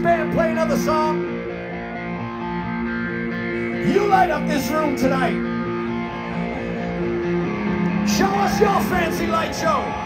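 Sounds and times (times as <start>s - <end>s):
electric guitar chord ringing: 0.1s - 10.0s.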